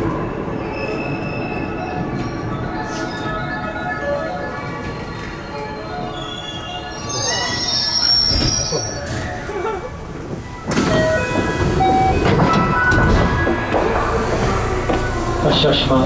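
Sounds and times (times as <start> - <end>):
wheels and brakes squealing: 0.6 - 3.4, 4.6 - 9.7
traction motors whining: 2.0 - 16.0.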